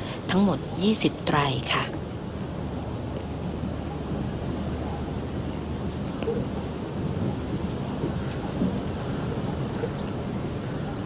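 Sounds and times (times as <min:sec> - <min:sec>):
low rumbling outdoor noise: 0:00.0 - 0:11.0
faint clicks: 0:08.0 - 0:09.0.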